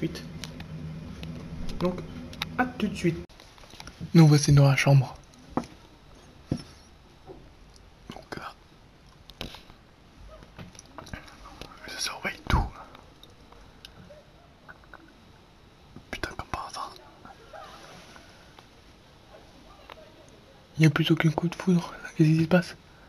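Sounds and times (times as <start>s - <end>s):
person whispering: 8.1s - 8.6s, 10.9s - 13.0s, 16.1s - 17.4s.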